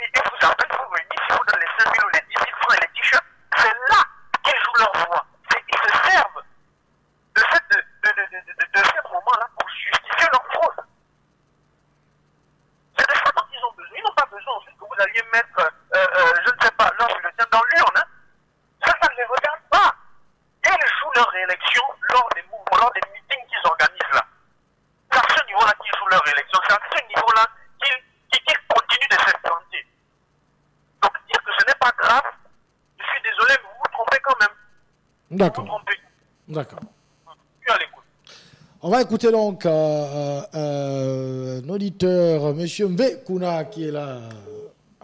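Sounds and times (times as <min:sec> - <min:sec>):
person speaking over telephone: 0:00.0 - 0:06.5, 0:07.3 - 0:11.0, 0:12.9 - 0:18.2, 0:18.8 - 0:20.0, 0:20.6 - 0:24.4, 0:25.1 - 0:30.0, 0:31.0 - 0:34.7, 0:35.3 - 0:38.1.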